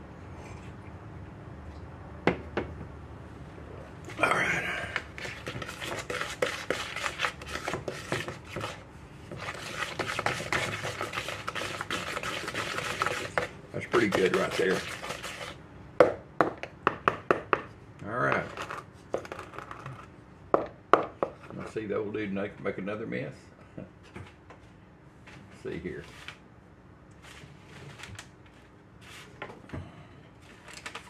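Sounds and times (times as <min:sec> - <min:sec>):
wooden spoon stirring batter: 0:04.8 - 0:15.6.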